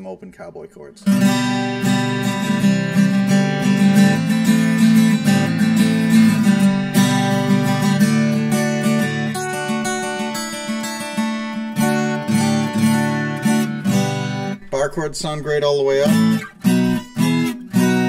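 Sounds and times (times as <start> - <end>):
acoustic guitar chords strummed: 1.0 - 18.0.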